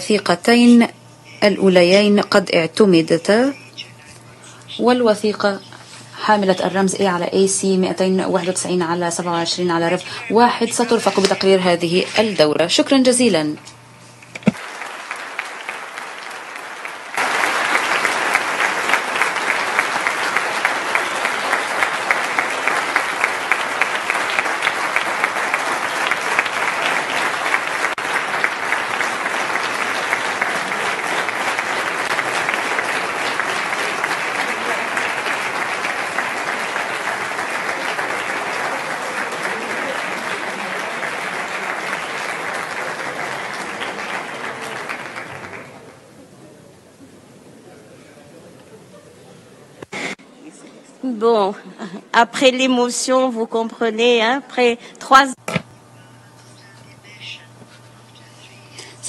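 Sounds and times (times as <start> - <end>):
large crowd applauding: 14.4 - 46.6.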